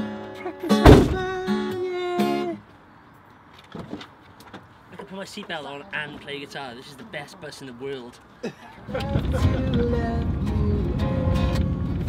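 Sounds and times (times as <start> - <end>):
acoustic guitars strummed: 0.0 - 2.6, 8.8 - 12.0.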